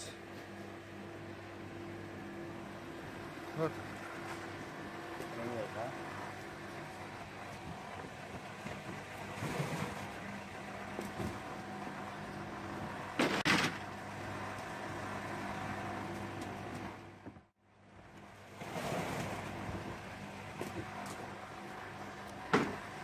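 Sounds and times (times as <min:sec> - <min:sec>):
motor humming steadily: 0:00.0 - 0:23.0.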